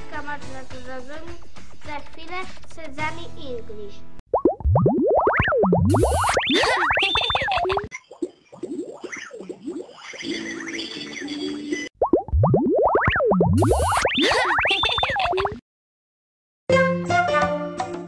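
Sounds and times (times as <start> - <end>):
cartoon sound effects: 5.2 - 7.9, 13.0 - 15.6.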